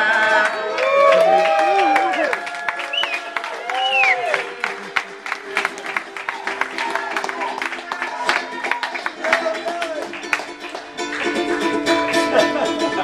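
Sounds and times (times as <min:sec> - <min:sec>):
audience cheering and whooping: 0:00.0 - 0:04.8, 0:05.8 - 0:10.2
audience clapping: 0:00.0 - 0:13.0
ukulele notes ringing: 0:09.1 - 0:13.0.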